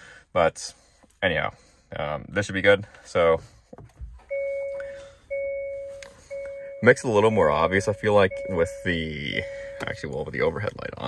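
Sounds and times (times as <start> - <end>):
car warning chime: 4.2 - 10.7.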